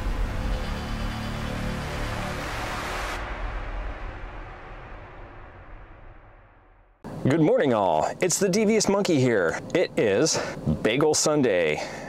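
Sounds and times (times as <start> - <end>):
deep rumble: 0.0 - 7.2
dense whoosh: 0.0 - 7.2.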